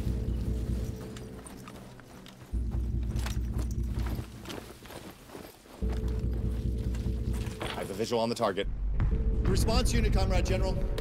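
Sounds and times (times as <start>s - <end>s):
rustling: 0.0s - 8.1s
footsteps in undergrowth: 0.0s - 8.4s
equipment clicks: 0.3s - 8.0s.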